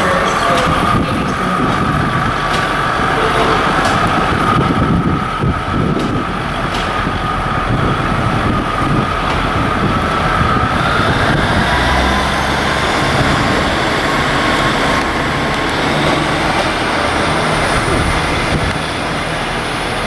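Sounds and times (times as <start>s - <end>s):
diesel train rumble: 0.0s - 20.0s.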